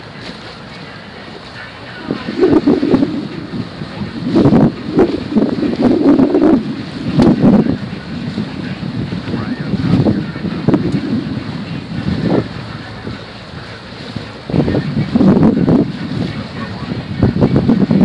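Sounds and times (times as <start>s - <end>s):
water washing against hull: 0.0s - 18.0s
wind buffeting microphone: 0.0s - 18.0s.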